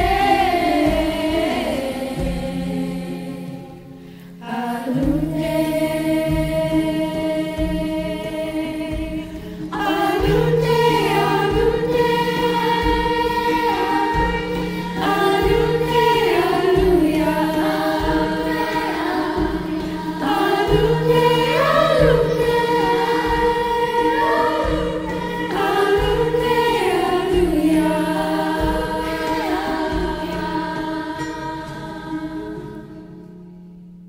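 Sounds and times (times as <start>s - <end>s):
girls' chorus singing lullaby: 0.0s - 33.8s
guitar: 0.0s - 34.0s
low percussion: 0.0s - 34.0s.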